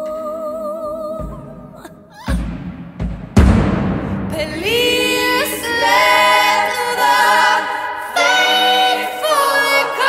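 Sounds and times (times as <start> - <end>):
women singing in harmony: 0.0 - 2.0, 4.3 - 10.0.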